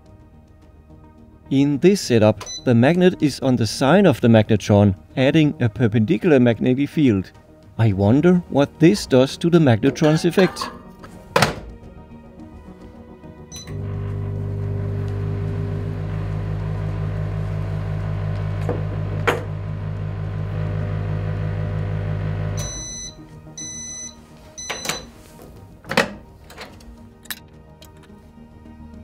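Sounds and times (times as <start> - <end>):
microwave beeps: 2.4 - 2.7, 13.5 - 25.1
microwave electrical hum: 13.6 - 23.2.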